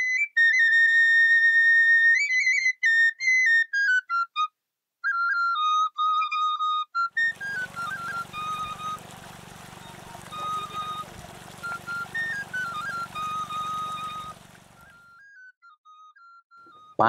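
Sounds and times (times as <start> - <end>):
flute melody: 0.0 - 17.0
water pouring onto ground: 7.2 - 15.0.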